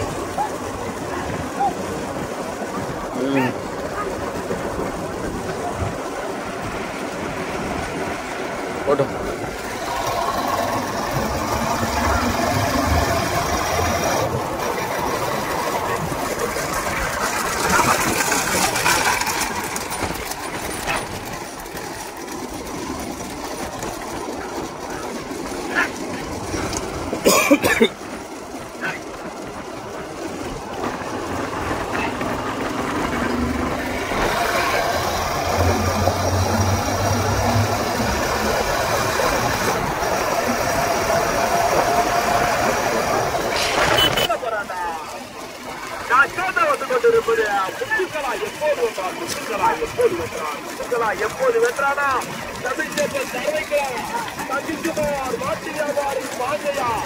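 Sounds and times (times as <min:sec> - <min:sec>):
low engine hum: 0:00.0 - 0:57.0
motorcycle engines running: 0:00.0 - 0:57.0
wind and road noise: 0:00.0 - 0:57.0.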